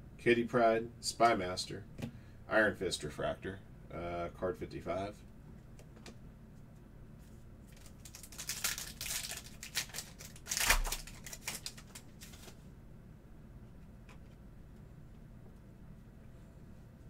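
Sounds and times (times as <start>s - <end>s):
handling of cards: 5.7s - 12.7s
foil wrapper tearing and crinkling: 7.6s - 12.6s.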